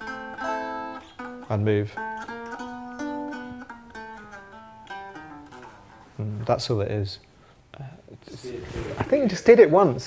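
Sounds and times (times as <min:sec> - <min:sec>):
electric guitar chords and notes: 0:00.0 - 0:06.2.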